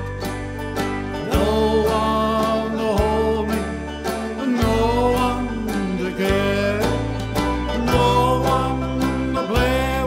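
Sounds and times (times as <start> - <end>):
banjo picking: 0.0 - 10.0
bass line: 0.0 - 10.0
man singing: 1.1 - 10.0.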